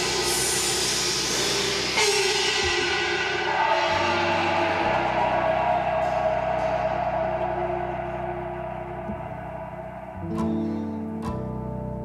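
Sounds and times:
gongs and cymbals ringing: 0:00.0 - 0:11.1
low sustained tone: 0:00.0 - 0:12.0.

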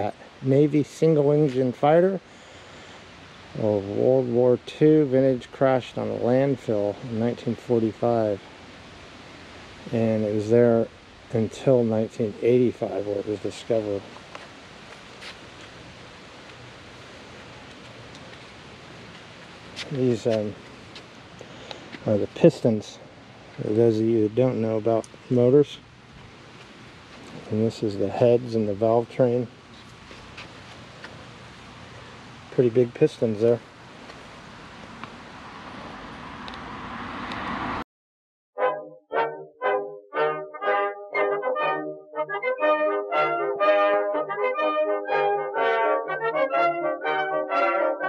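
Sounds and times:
steady background hiss: 0:00.0 - 0:37.8
passing vehicle road noise: 0:29.6 - 0:37.8.

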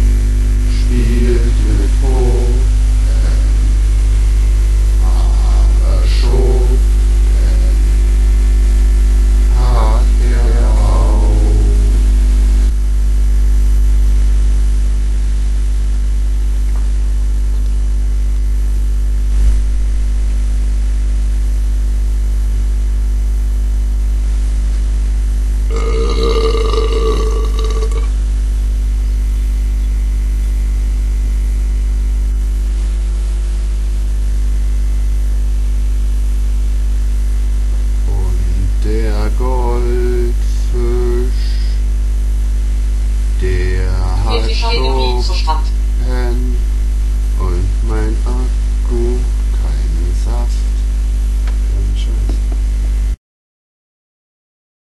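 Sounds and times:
loud low drone: 0:00.0 - 0:16.7, 0:25.4 - 0:53.2
rough voice-like sound: 0:00.7 - 0:03.7, 0:05.0 - 0:07.9, 0:09.5 - 0:12.1, 0:25.7 - 0:28.1, 0:38.1 - 0:41.8, 0:43.4 - 0:46.6, 0:47.4 - 0:50.8, 0:51.7 - 0:52.4
wavering voice-like sound: 0:00.7 - 0:03.7, 0:05.0 - 0:07.9, 0:09.5 - 0:12.0, 0:38.1 - 0:41.8, 0:43.4 - 0:46.6, 0:47.4 - 0:50.7.

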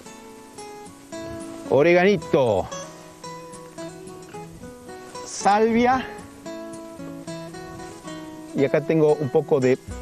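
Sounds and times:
acoustic guitar music: 0:00.0 - 0:10.0.

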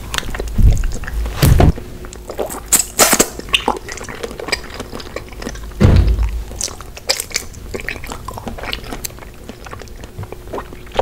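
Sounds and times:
crunchy chewing: 0:00.0 - 0:11.0.

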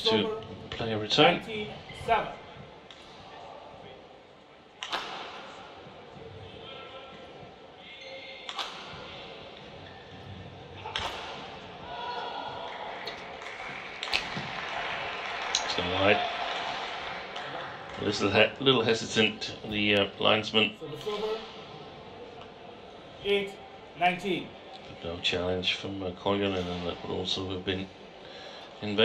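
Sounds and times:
racket striking shuttlecock: 0:04.8 - 0:05.6, 0:08.5 - 0:09.1, 0:10.8 - 0:11.7.

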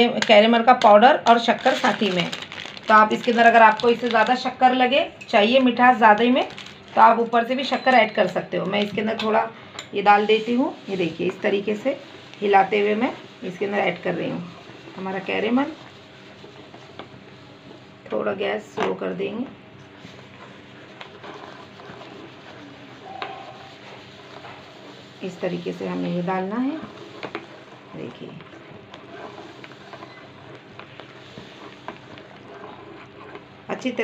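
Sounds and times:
spoon stirring milk in pot: 0:20.0 - 0:25.4, 0:26.8 - 0:33.9.

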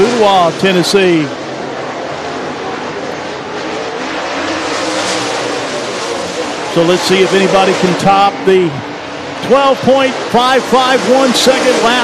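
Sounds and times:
race car engines at speed: 0:00.0 - 0:12.0.

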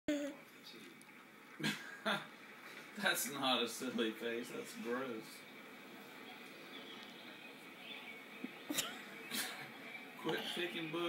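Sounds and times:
faint room hiss: 0:00.1 - 0:11.0.

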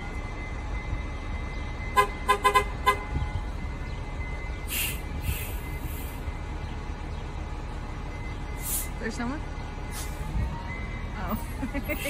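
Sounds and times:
low engine rumble: 0:00.0 - 0:12.0
bus horn short toots: 0:02.0 - 0:03.2.

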